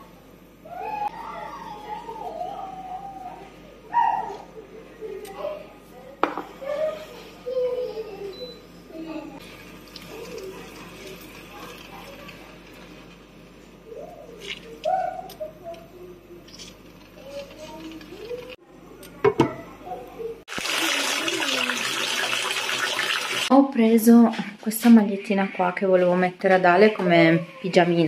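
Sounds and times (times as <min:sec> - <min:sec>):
water running into a bathtub: 0:20.5 - 0:23.5.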